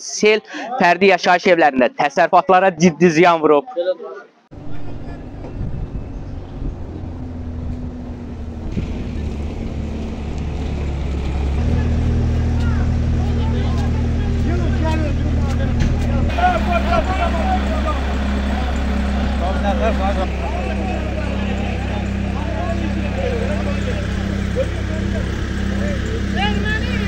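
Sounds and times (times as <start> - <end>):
men talking: 2.4 - 6.2, 11.4 - 27.0
vehicle engine idling: 4.5 - 27.0.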